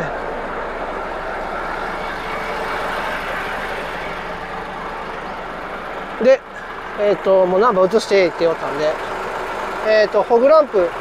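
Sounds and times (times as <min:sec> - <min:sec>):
truck diesel engine idling: 0:00.0 - 0:11.0.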